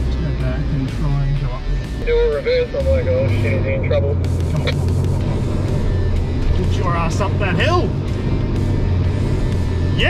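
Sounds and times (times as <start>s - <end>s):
background music: 0.0s - 10.0s
engine pulling at full throttle: 0.0s - 10.0s.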